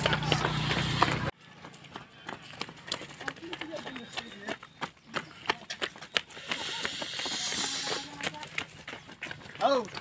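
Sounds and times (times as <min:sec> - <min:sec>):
loud hiss: 0:06.5 - 0:08.1.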